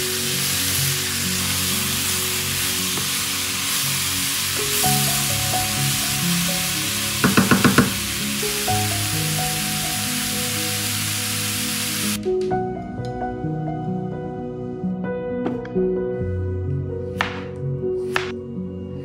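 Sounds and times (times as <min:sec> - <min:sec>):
food sizzling in a frying pan: 0:00.0 - 0:12.2.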